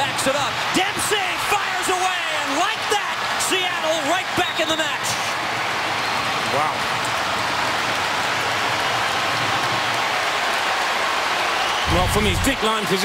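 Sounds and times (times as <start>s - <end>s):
stadium crowd noise: 0.0s - 13.0s.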